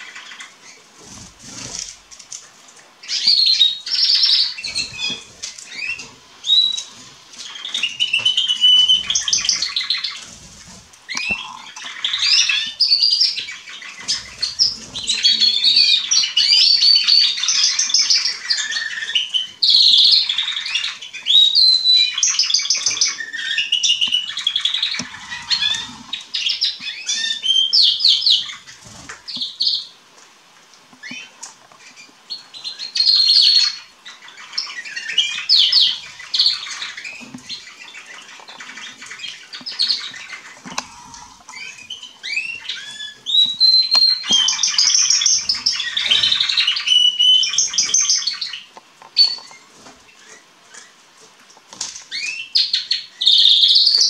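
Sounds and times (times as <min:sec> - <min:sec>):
canaries singing: 0:00.0 - 0:54.0.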